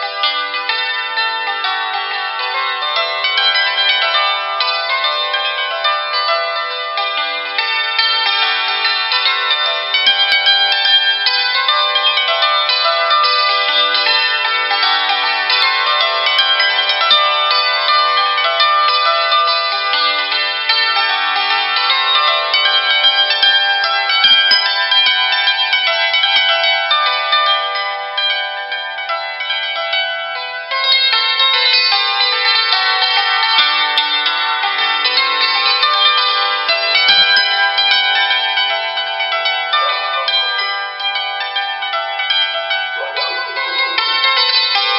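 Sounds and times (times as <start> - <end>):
hammered dulcimer notes: 35.0 - 44.9.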